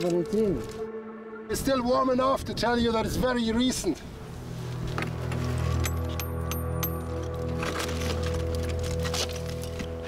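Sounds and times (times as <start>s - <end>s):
background music with low drone: 0.0s - 10.0s.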